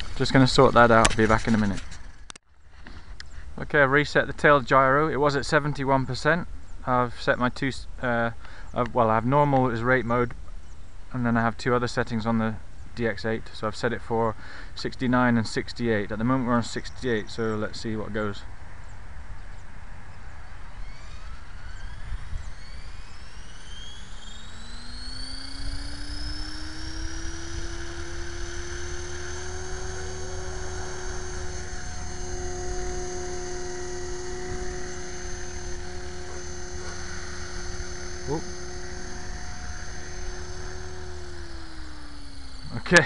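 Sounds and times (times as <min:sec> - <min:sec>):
rc helicopter rotor whine: 0:00.0 - 0:43.0.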